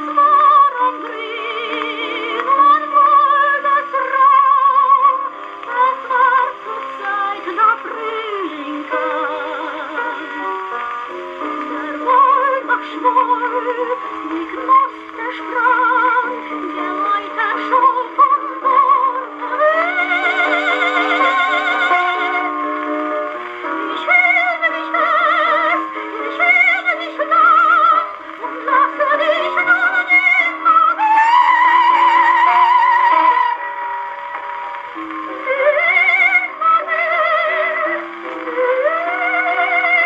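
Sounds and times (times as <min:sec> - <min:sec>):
person singing with vibrato: 0:00.0 - 0:10.6, 0:11.6 - 0:22.6, 0:23.6 - 0:34.0
old phonograph record music: 0:00.0 - 0:40.0.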